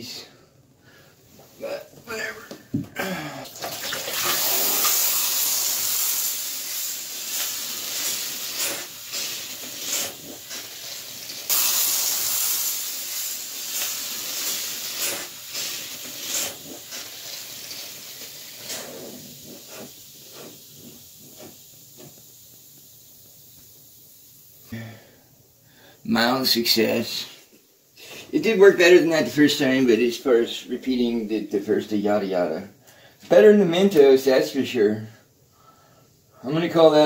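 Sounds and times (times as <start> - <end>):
gas and foam hissing from bottle: 4.1 - 24.6.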